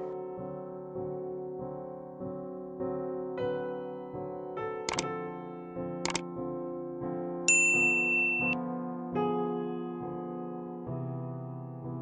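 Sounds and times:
soft piano music: 0.0 - 12.0
bright notification ding: 7.5 - 8.6
button clicks: 7.8 - 8.6.

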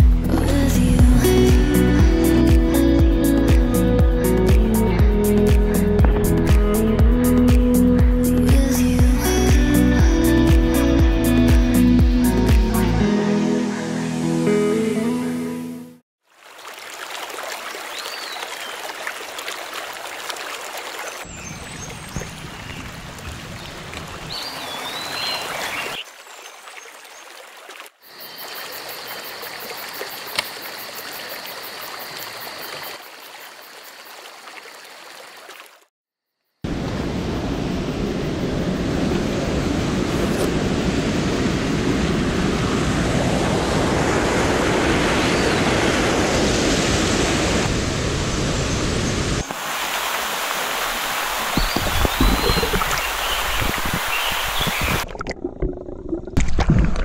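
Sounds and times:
stream rushing over stones: 16.2 - 35.9, 41.4 - 55.2.

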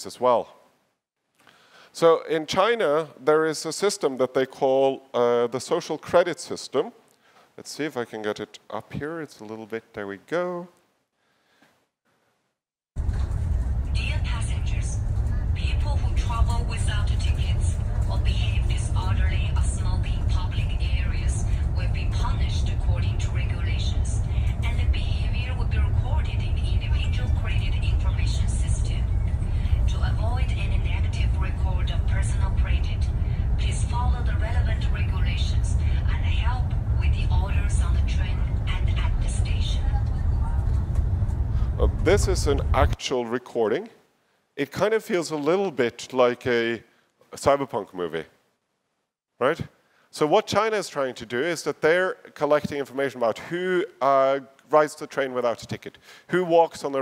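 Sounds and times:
train rumble: 13.0 - 43.0
announcement voice: 13.9 - 40.7, 41.7 - 43.9.

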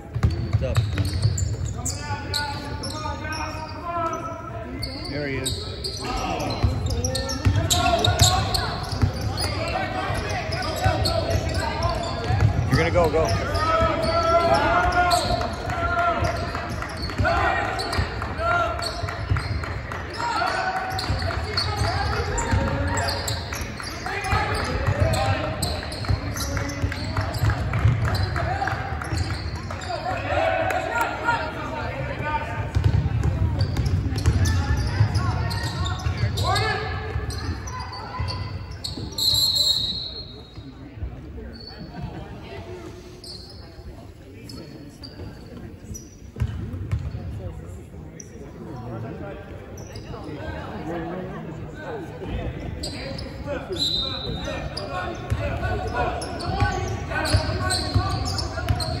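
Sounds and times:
referee's whistle: 37.4 - 40.6, 53.7 - 54.9.

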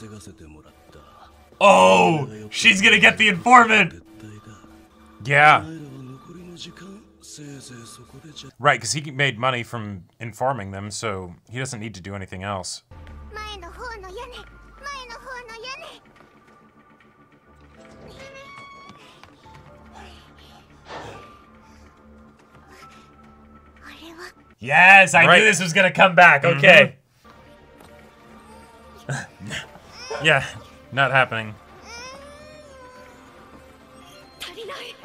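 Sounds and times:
anime soundtrack music: 0.0 - 9.3, 12.9 - 35.0.

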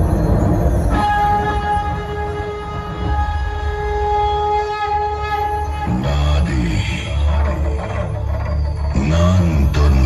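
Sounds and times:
dense drumming and bass: 0.0 - 10.0
held horn-like note: 0.3 - 7.5
amplified band music: 0.9 - 9.3.

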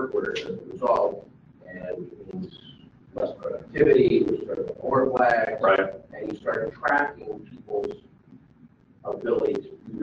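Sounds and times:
person talking: 0.0 - 8.0, 9.0 - 10.0.

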